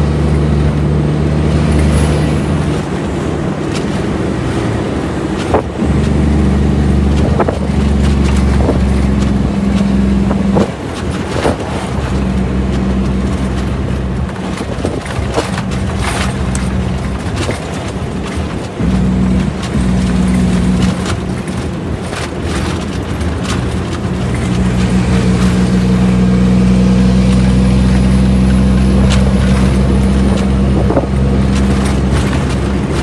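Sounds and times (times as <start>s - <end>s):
diesel truck engine drone: 0.0s - 33.0s
cab clicks and rattles: 2.3s - 33.0s.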